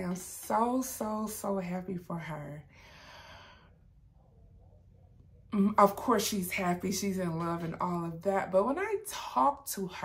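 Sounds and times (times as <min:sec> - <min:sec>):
faint low hum: 0:00.0 - 0:08.8.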